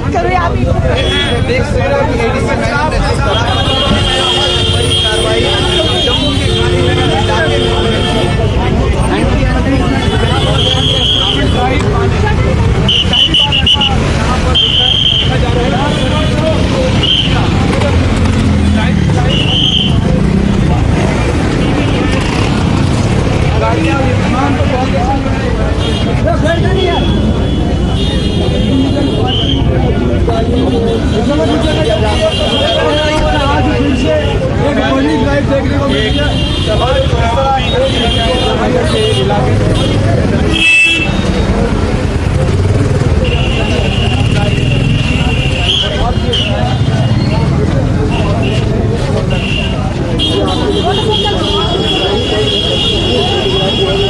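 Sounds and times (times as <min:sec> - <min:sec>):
crowd voices: 0:00.0 - 0:54.0
street traffic: 0:00.0 - 0:54.0
vehicle horns: 0:00.8 - 0:01.7, 0:03.2 - 0:09.0, 0:09.8 - 0:11.9, 0:12.6 - 0:22.8, 0:25.6 - 0:35.0, 0:35.8 - 0:54.0.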